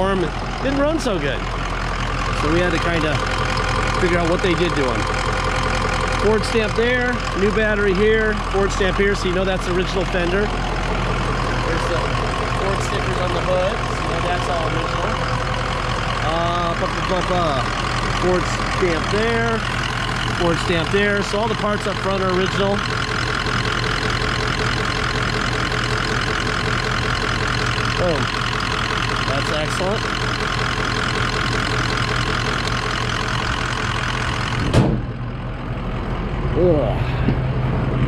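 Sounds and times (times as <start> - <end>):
diesel engine idling: 0.0 - 38.0
loud bump: 34.6 - 35.3.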